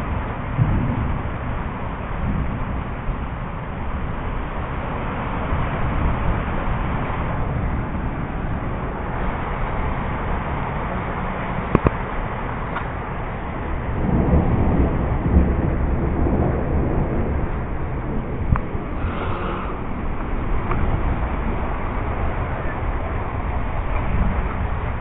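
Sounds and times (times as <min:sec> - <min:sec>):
heavy rain: 0:00.0 - 0:25.0
low rumble: 0:00.0 - 0:25.0.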